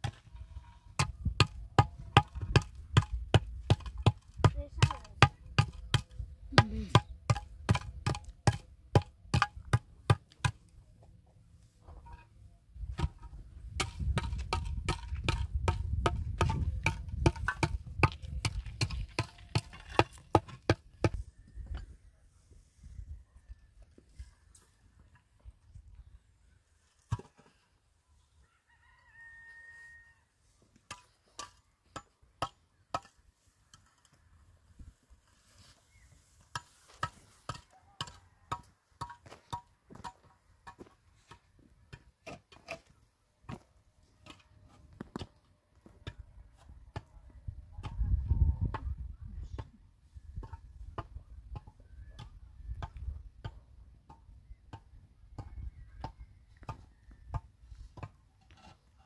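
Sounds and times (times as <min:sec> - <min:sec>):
concrete blocks knocking together: 0:13.8 - 0:20.9.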